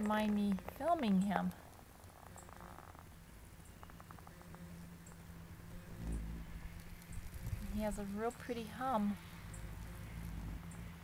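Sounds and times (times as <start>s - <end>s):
moth wings humming: 0.0s - 11.0s.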